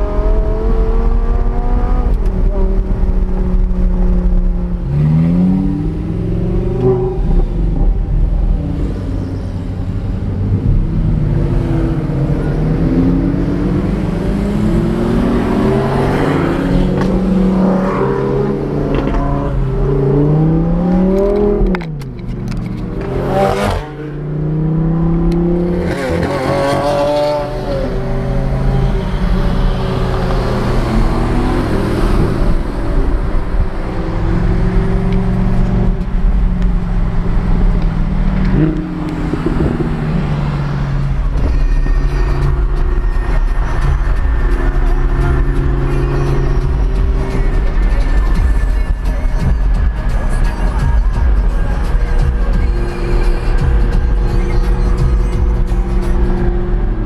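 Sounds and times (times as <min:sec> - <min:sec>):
sports car engine revving: 0:00.0 - 0:57.0.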